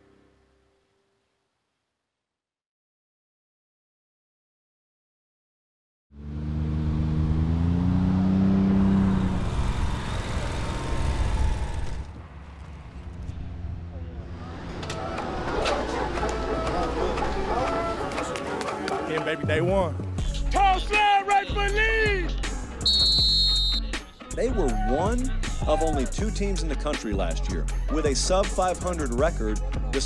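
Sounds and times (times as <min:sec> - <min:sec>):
low engine-like rumble: 0:09.2 - 0:18.3
men talking: 0:15.1 - 0:22.5, 0:24.3 - 0:30.0.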